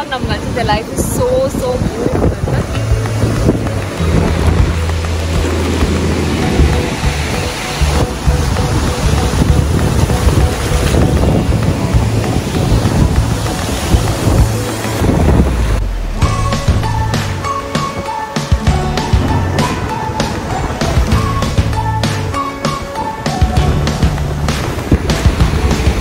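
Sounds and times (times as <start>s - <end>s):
sea surf breaking: 0.0s - 26.0s
wind buffeting microphone: 0.0s - 26.0s
music with steady bass notes: 0.8s - 26.0s.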